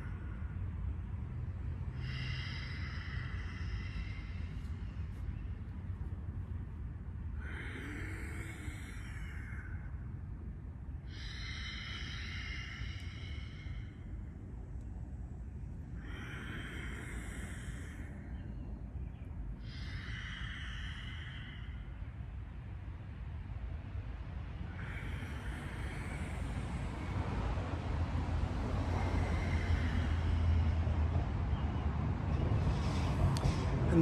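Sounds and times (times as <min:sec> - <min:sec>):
man breathing loudly: 0:00.0 - 0:05.8, 0:07.2 - 0:23.2, 0:24.1 - 0:31.6
steady low rumble: 0:00.0 - 0:34.0.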